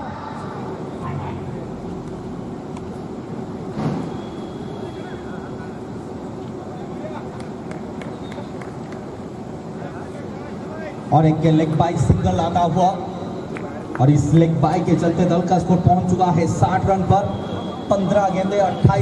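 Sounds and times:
distant voices of players and spectators: 0:00.0 - 0:19.0
steady low hum: 0:00.0 - 0:19.0.

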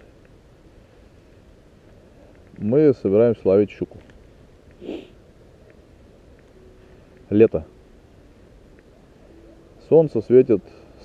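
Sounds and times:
faint background hiss: 0:00.0 - 0:11.0
soft breath through nose: 0:04.8 - 0:05.2.

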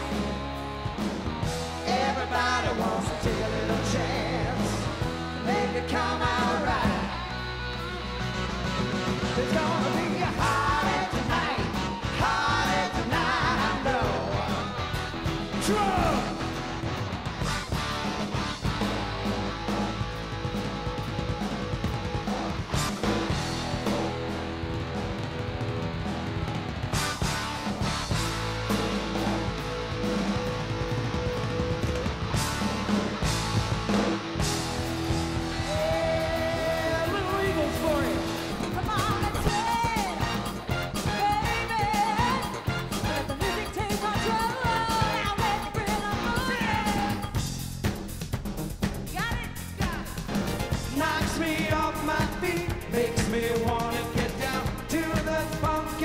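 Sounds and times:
electric guitar: 0:00.0 - 0:47.6
drum kit: 0:00.0 - 0:56.0
person singing: 0:09.4 - 0:14.8, 0:35.6 - 0:40.4, 0:41.0 - 0:47.4.

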